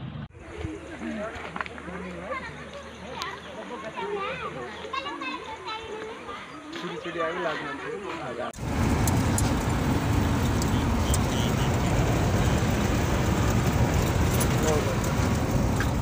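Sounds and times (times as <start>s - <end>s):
voices: 0.4s - 16.0s
car road and engine noise: 8.6s - 16.0s.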